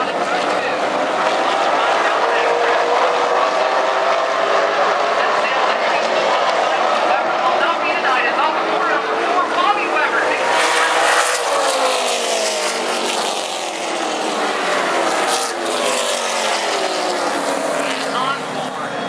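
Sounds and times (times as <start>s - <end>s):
crowd voices: 0.0s - 19.0s
stock cars racing past: 0.0s - 19.0s.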